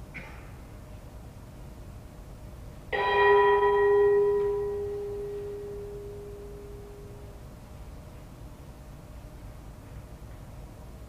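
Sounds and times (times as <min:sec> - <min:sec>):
bell ringing: 0:03.0 - 0:07.3.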